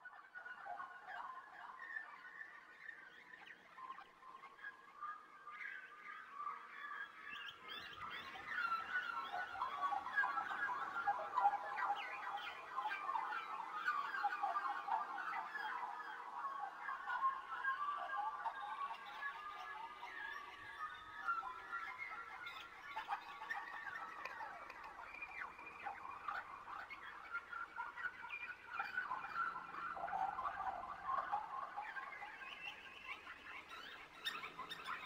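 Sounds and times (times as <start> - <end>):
small birds chirping: 0.4 - 35.0.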